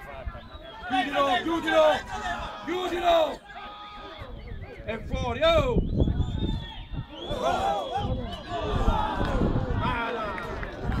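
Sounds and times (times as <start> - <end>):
men shouting and calling: 0.0 - 5.8, 6.8 - 10.9.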